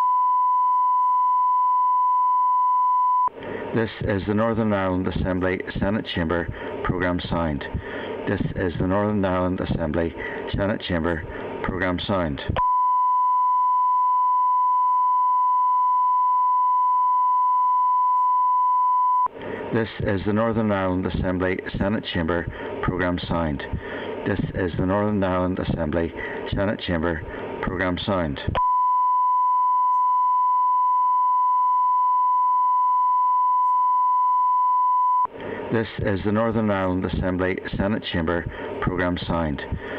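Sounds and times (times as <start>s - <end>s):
steady sine test tone: 0.0s - 3.3s, 12.6s - 19.3s, 28.5s - 35.3s
steady pure test tone: 0.0s - 39.9s.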